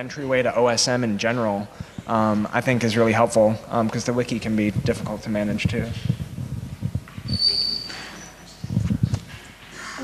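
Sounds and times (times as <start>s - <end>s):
microphone handling thumps: 4.7s - 9.5s
thin high squeak: 7.3s - 8.5s.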